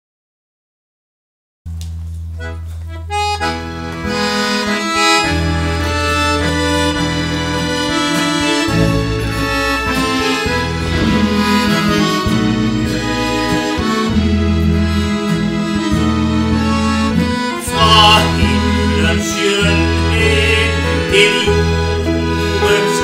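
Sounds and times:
button accordion playing: 2.4 - 23.0.

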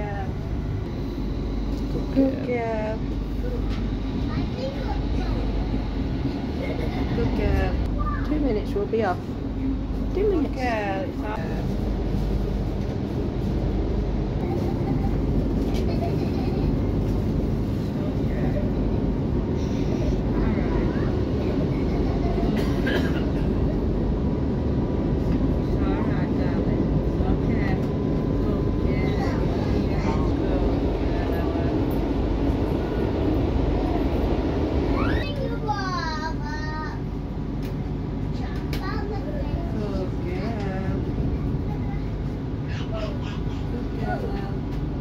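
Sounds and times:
train wheels rumbling on rails: 0.0 - 45.0.

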